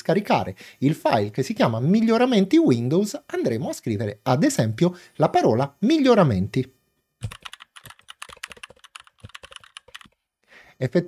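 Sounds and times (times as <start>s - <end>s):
typing on computer keyboard: 7.2s - 10.2s.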